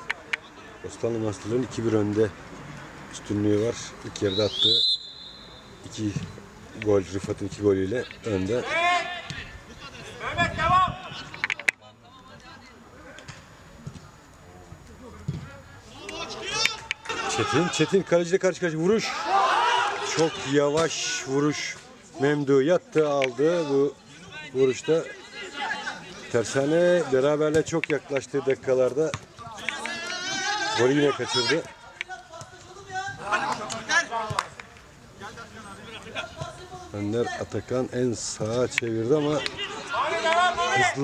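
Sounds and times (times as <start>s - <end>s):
distant shouts of players: 15.8s - 18.1s, 19.0s - 21.6s, 29.4s - 34.5s, 39.2s - 41.0s.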